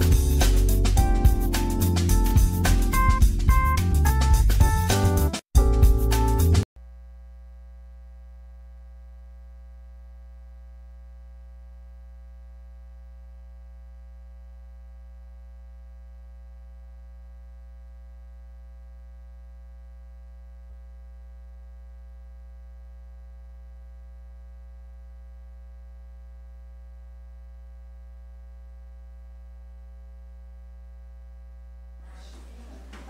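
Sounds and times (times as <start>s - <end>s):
electrical mains hum: 6.8s - 33.0s.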